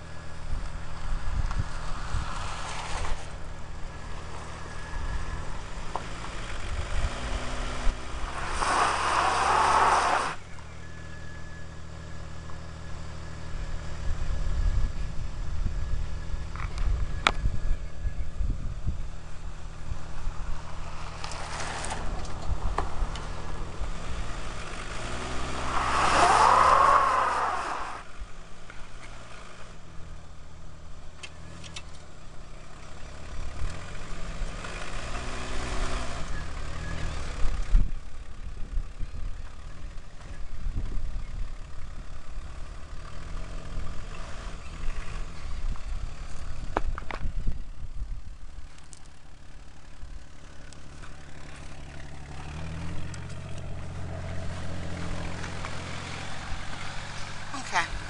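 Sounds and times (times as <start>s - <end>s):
car engine revving: 0.0s - 17.9s, 19.1s - 38.4s, 48.4s - 58.0s
engine whine: 0.0s - 58.0s.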